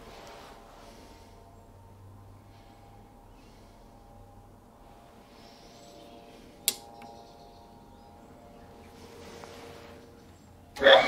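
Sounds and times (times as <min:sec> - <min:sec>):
sharp metallic click: 0:06.6 - 0:07.1.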